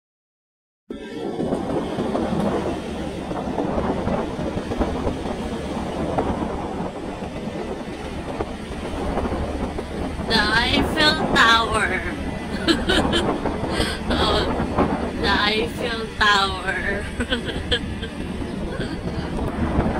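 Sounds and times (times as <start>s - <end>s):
wind on microphone: 0.9s - 19.9s.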